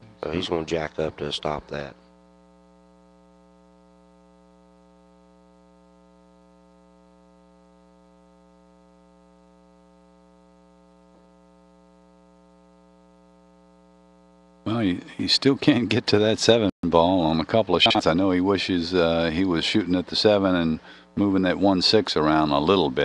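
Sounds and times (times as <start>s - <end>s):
faint electrical mains hum: 0.0s - 23.0s.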